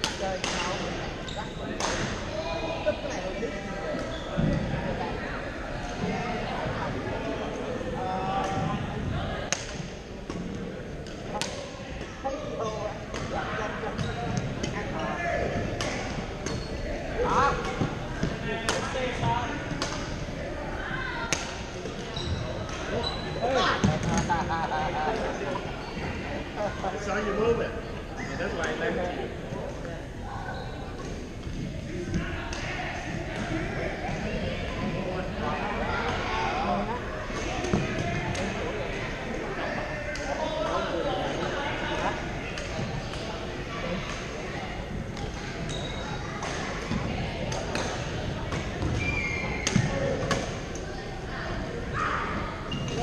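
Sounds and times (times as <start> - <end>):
background chatter: 0.0 - 53.0
sneakers squeaking on court floor: 1.2 - 1.9, 14.0 - 14.5, 16.4 - 16.9, 22.0 - 24.1, 45.6 - 46.3, 52.6 - 53.0.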